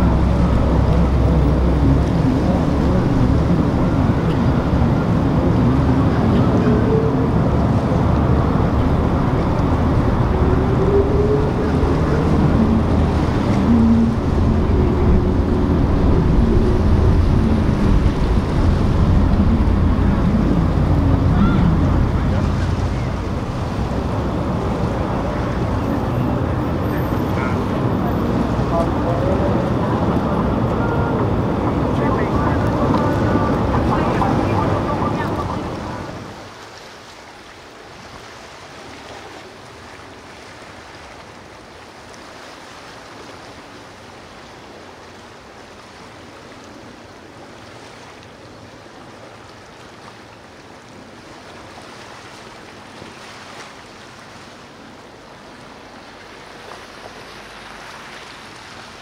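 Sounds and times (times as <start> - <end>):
wind on microphone: 0.0 - 36.6
boat engine: 0.0 - 59.0
rushing water: 0.0 - 59.0.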